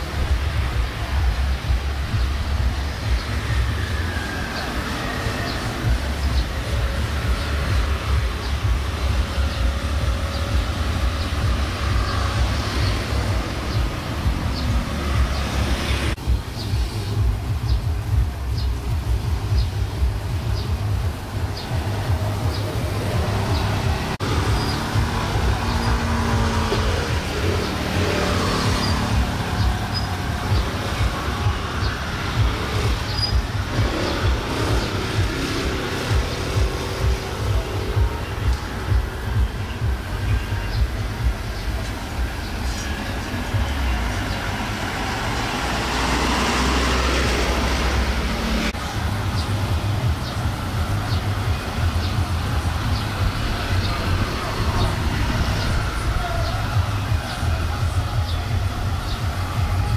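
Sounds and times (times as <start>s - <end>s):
scooters and cars passing: 0.0s - 59.9s.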